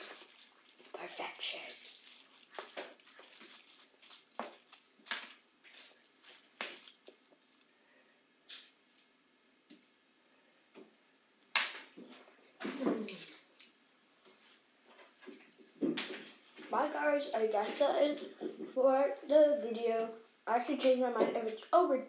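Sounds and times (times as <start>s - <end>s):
foil wrapper crumpling: 0.0s - 7.7s.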